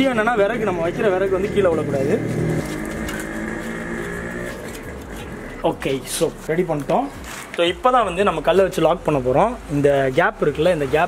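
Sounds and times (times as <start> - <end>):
engine humming: 0.0 - 7.2.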